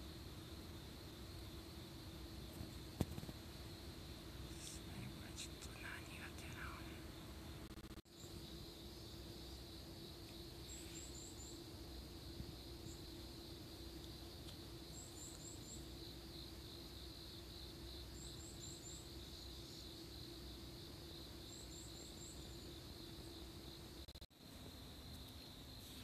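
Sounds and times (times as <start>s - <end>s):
high-pitched background hiss: 0.0s - 26.0s.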